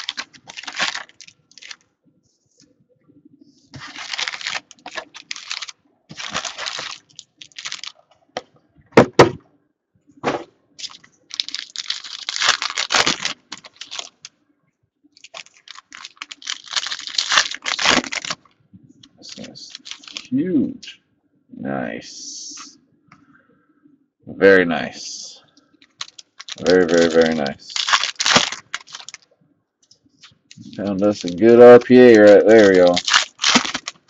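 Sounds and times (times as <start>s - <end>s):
foil wrappers tearing and crinkling: 0.0s - 1.8s, 3.8s - 8.0s, 10.8s - 14.3s, 15.2s - 18.5s, 19.3s - 20.3s, 25.9s - 29.2s, 30.5s - 34.0s
cards being handled: 3.8s - 8.0s, 19.3s - 20.3s, 25.9s - 29.2s, 30.2s - 34.0s.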